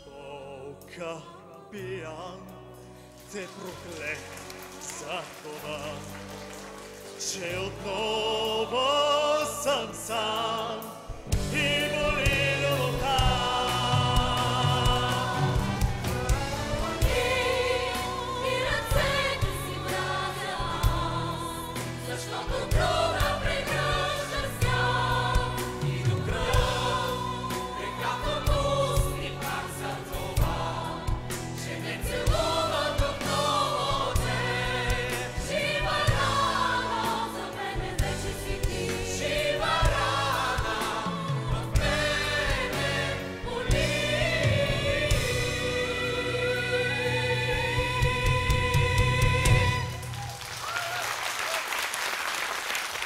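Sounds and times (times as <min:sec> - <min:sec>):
choir and soloists singing: 0:00.0 - 0:50.2
live band accompaniment: 0:02.5 - 0:50.9.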